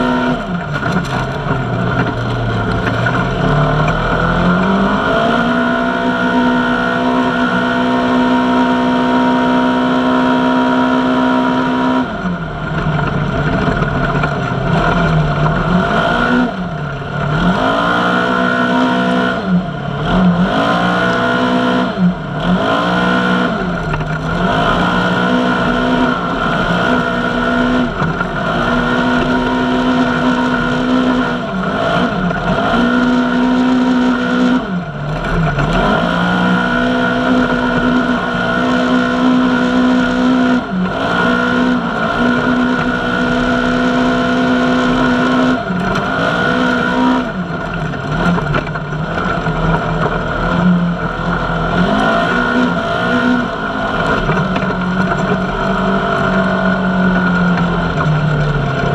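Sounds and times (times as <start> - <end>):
off-road vehicle engine revving: 0.0 - 58.9.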